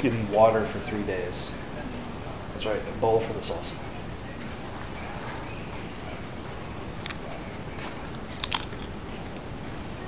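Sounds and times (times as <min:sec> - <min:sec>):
low room hiss: 0:00.0 - 0:10.0
chip crunching: 0:08.3 - 0:08.9.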